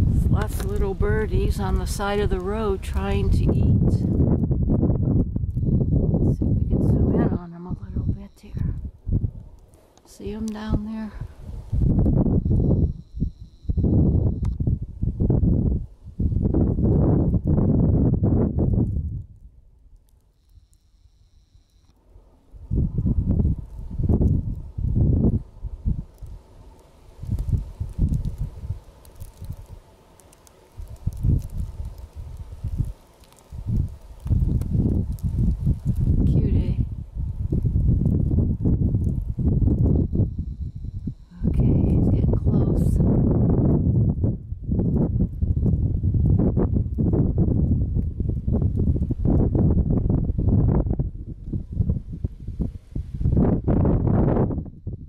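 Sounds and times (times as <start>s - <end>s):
wind buffeting microphone: 0.0s - 20.1s, 22.2s - 55.0s.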